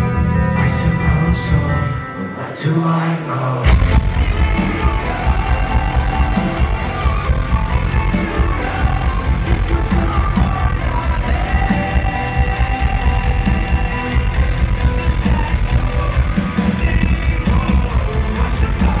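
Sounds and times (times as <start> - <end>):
synth notes: 0.0 - 19.0
person singing: 0.4 - 19.0
drums and bass pounding: 3.7 - 19.0.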